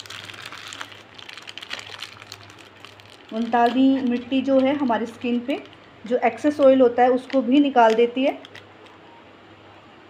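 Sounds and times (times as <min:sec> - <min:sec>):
plastic packet crinkling: 0:00.0 - 0:09.0
low steady hum: 0:00.0 - 0:10.0.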